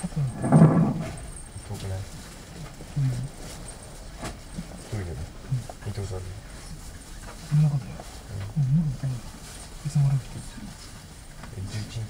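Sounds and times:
man talking: 0.0 - 0.4, 1.5 - 2.1, 2.9 - 3.4, 4.8 - 6.6, 7.4 - 12.0
steady low rumble: 0.0 - 12.0.

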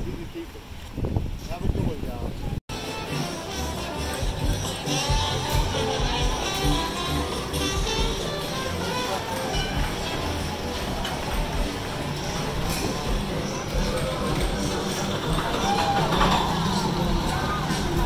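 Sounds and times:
people talking: 0.0 - 0.7, 1.4 - 18.0
background music: 2.7 - 18.0.

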